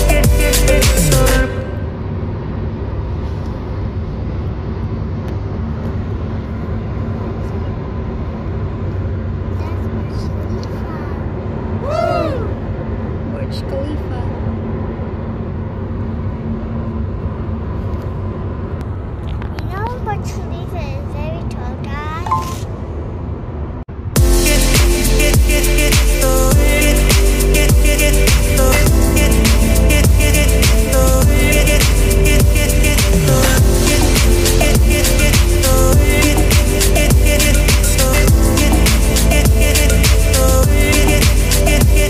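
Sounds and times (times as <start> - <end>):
car cabin road rumble: 1.7 - 24.3
child's voice: 9.5 - 11.3, 19.5 - 22.6.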